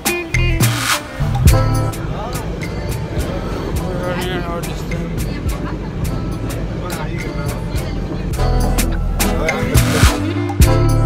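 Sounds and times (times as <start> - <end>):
song with drum beat and vocals: 0.0 - 11.0.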